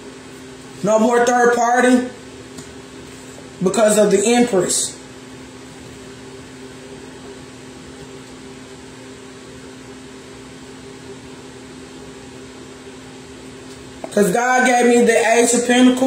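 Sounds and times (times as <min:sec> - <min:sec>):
steady mechanical hum: 0:00.0 - 0:16.0.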